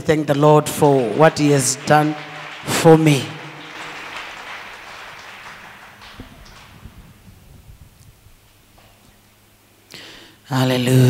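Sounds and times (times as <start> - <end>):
congregation applauding: 0.4 - 8.6.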